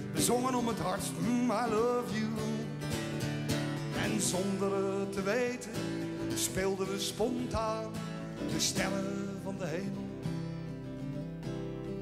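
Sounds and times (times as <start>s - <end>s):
person singing: 0.0s - 2.8s, 3.9s - 10.0s
acoustic guitar strumming chords: 0.0s - 12.0s.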